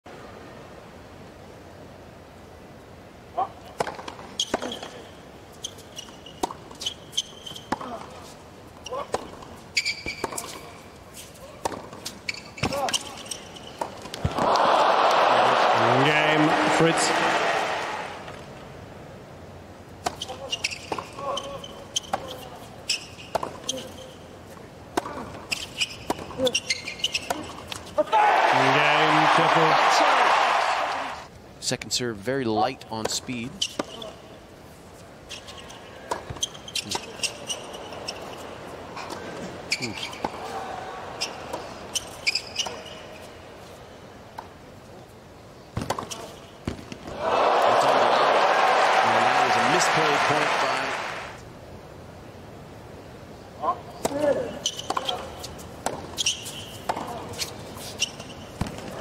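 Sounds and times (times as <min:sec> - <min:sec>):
racket striking tennis ball: 0:11.6 - 0:13.2, 0:20.0 - 0:21.1, 0:23.2 - 0:23.7, 0:24.9 - 0:28.0, 0:45.8 - 0:47.2, 0:54.0 - 0:57.9
crowd cheering and applause: 0:14.3 - 0:18.3, 0:28.1 - 0:31.3, 0:47.1 - 0:51.4.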